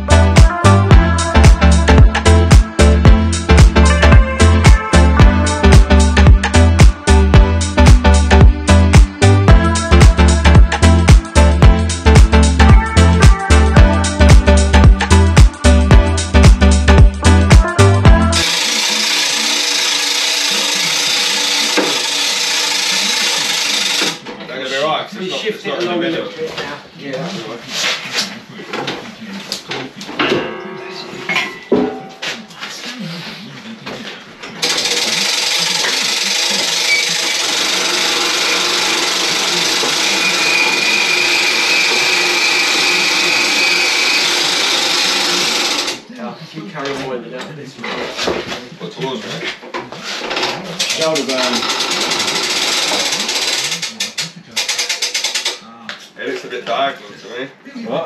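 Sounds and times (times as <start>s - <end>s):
power tool running with whine: 18.4s - 24.2s, 34.6s - 46.0s.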